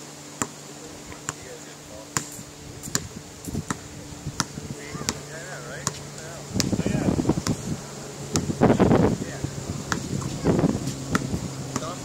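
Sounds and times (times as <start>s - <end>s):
basketball bouncing on hard court: 2.2s - 3.8s, 4.4s - 5.2s, 5.8s - 6.0s, 8.3s - 8.5s, 11.1s - 12.0s.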